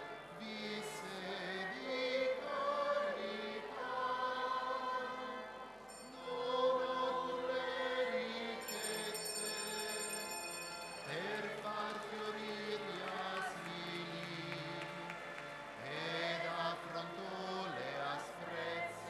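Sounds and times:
choir singing chant: 0.0s - 19.0s.

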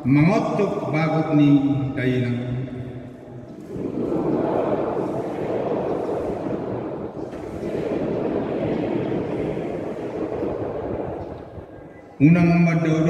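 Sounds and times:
congregation reading aloud: 0.0s - 13.0s.

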